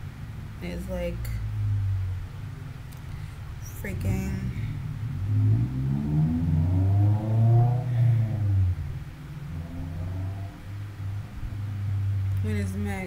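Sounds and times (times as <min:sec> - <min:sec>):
vehicle engine revving: 0:00.0 - 0:12.5.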